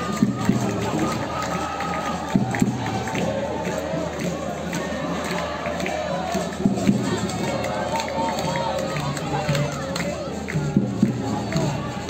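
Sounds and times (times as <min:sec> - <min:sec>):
crowd shouting and chanting: 0:00.0 - 0:12.0.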